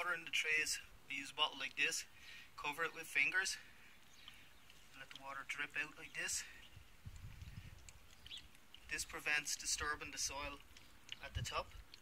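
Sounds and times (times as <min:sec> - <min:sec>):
wind rumble on microphone: 0:06.6 - 0:09.1, 0:09.7 - 0:12.0.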